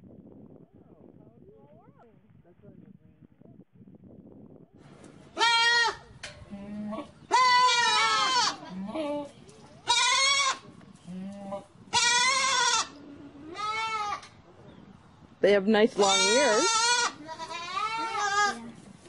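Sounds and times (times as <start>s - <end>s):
goats bleating: 5.4s - 9.2s, 9.8s - 14.3s, 16.0s - 18.8s.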